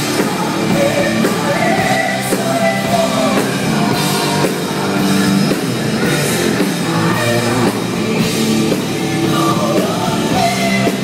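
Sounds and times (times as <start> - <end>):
woman singing: 0.0 - 5.1, 6.9 - 11.0
heavy metal band playing: 0.0 - 11.0.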